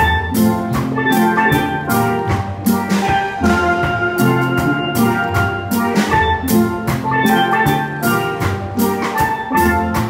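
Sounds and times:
steady drum beat: 0.0s - 10.0s
steel drums melody: 0.0s - 10.0s.

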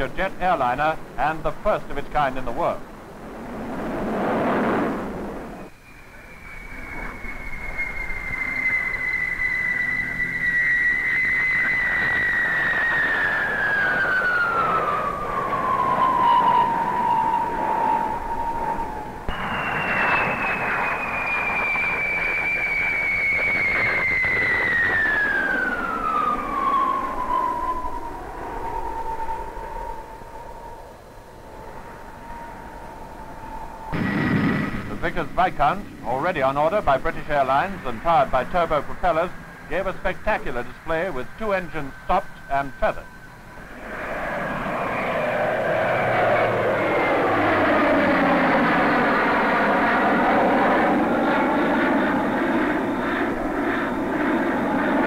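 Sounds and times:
jet airliner whine flying past: 0.0s - 55.0s.

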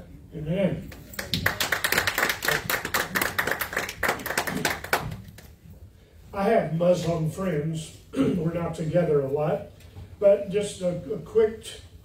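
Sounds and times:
crowd applauding: 1.1s - 5.4s.

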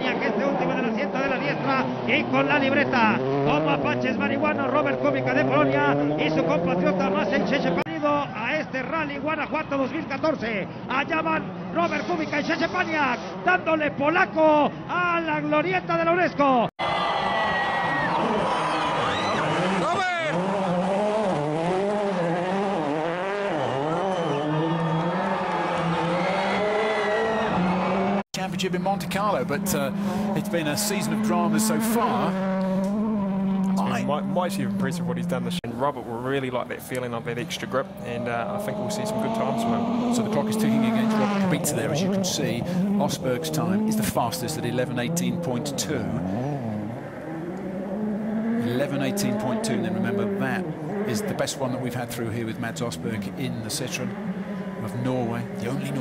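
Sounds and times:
car engine revving: 0.0s - 7.9s, 18.1s - 56.0s.

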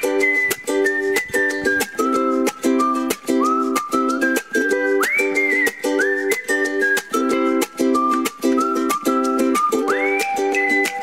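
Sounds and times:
upbeat plucked-string music: 0.0s - 11.0s.

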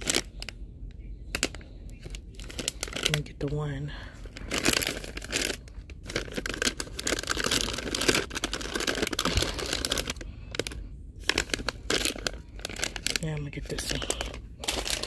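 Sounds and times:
plastic pouch crinkling: 0.0s - 0.6s, 1.2s - 15.0s.

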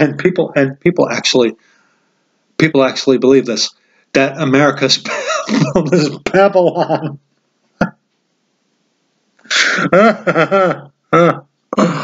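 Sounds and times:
man sneezing: 9.5s - 10.1s, 11.2s - 12.0s.

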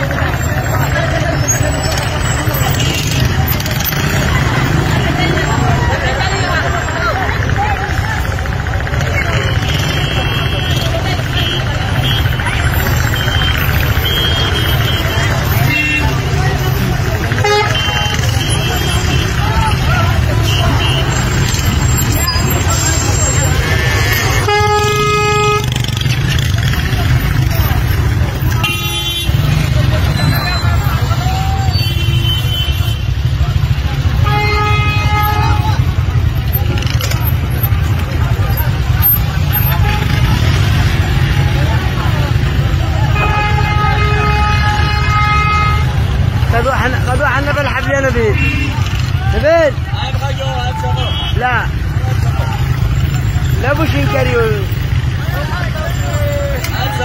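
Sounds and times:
scattered voices: 0.0s - 31.9s, 45.8s - 57.0s
low rumble of traffic: 0.0s - 57.0s
vehicle horn blasts: 17.4s - 19.3s, 24.2s - 25.9s, 28.6s - 29.6s, 34.1s - 35.8s, 43.1s - 46.1s.

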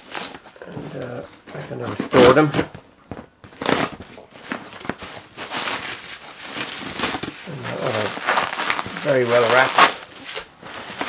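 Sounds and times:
bubble wrap crinkling: 0.0s - 11.0s
cardboard rustling: 0.0s - 11.0s.

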